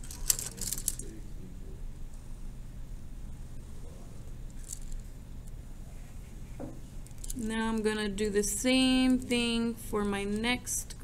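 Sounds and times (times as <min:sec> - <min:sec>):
plastic desk items clattering: 0:00.0 - 0:01.1
low electrical hum: 0:00.0 - 0:11.0.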